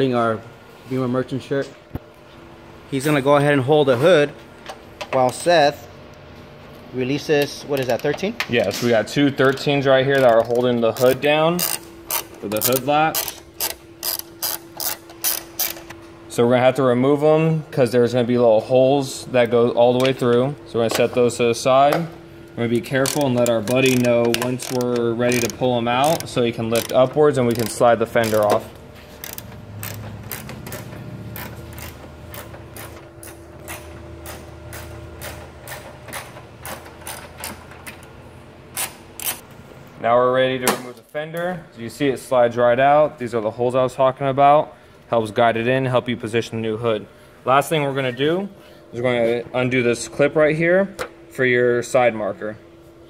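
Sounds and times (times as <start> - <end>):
steady low shop hum: 0.0 - 53.0
ratchet wrench clicking: 10.2 - 15.9, 22.9 - 28.6, 29.2 - 32.9, 38.8 - 39.4.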